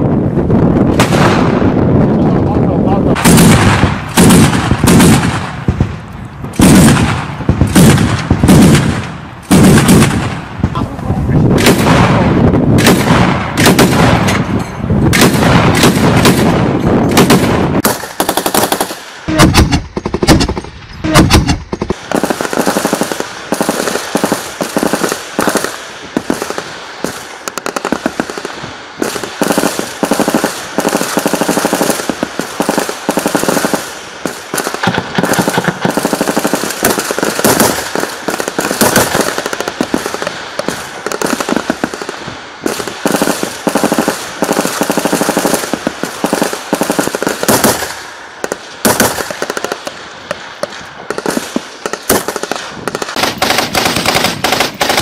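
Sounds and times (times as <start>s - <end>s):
automatic weapons firing: 0.9s - 1.8s, 3.0s - 5.9s, 6.5s - 10.7s, 11.5s - 55.0s.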